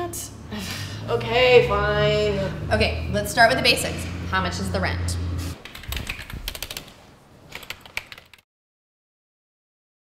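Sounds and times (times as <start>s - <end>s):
keyboard typing: 5.6s - 8.4s.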